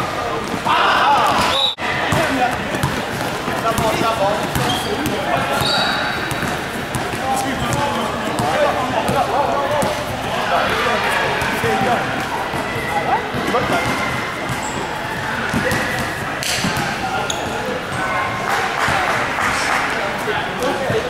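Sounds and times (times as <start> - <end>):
people shouting and chattering: 0.0 - 21.0
shoe squeaks: 4.5 - 8.4, 17.2 - 18.0.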